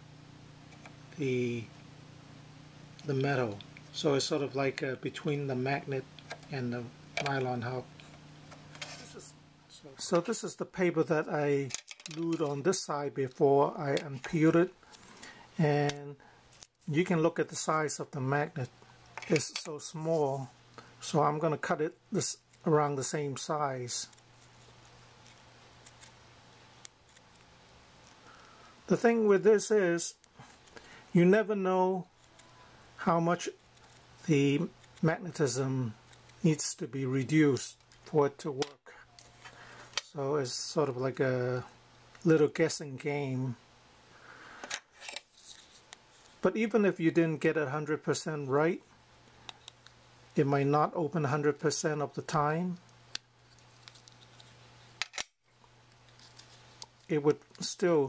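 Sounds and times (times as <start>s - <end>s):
low steady hum: 0.0s - 58.0s.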